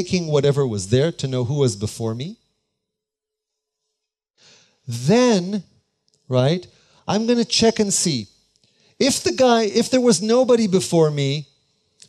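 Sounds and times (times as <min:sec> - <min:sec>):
man speaking: 0:00.0 - 0:02.4, 0:04.9 - 0:05.7, 0:06.3 - 0:08.3, 0:09.0 - 0:11.5
man's in-breath: 0:04.4 - 0:04.9, 0:06.7 - 0:07.0, 0:08.6 - 0:09.0.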